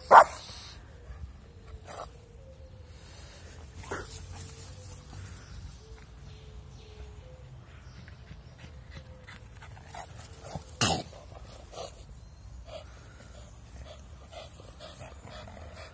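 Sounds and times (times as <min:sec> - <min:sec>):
dogs panting: 0:07.6 - 0:15.9.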